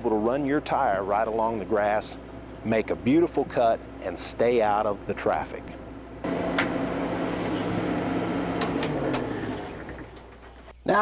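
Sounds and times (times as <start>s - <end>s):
tractor diesel engine running: 6.2s - 10.4s.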